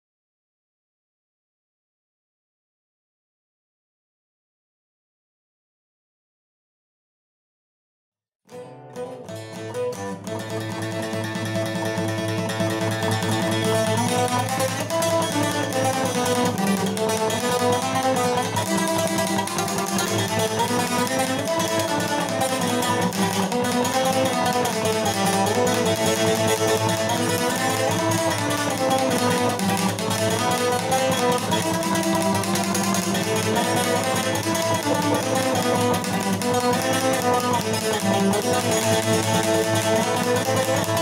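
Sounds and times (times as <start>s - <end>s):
lute fast-picking melody: 8.5s - 41.0s.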